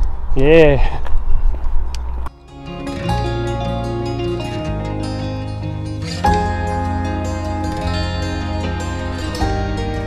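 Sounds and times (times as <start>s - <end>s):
background music with sustained notes: 2.3s - 10.0s.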